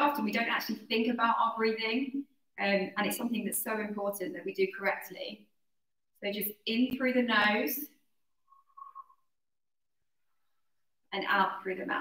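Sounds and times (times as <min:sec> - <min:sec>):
faint high whistle-like tone: 0:08.4 - 0:09.4.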